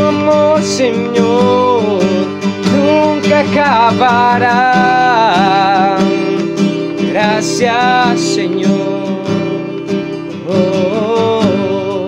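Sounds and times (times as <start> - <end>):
classical guitar strumming: 0.0 - 12.0.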